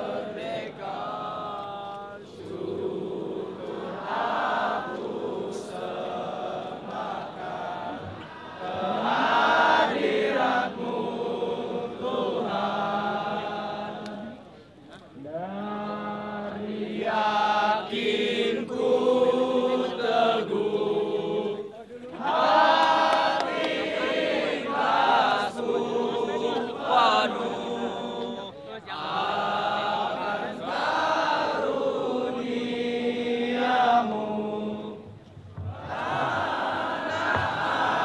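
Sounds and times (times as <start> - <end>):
men singing in unison: 0.0 - 14.4, 15.3 - 38.0.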